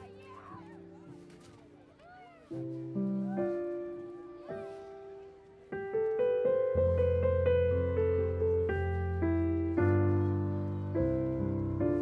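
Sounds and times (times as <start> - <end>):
piano chords: 2.4 - 12.0.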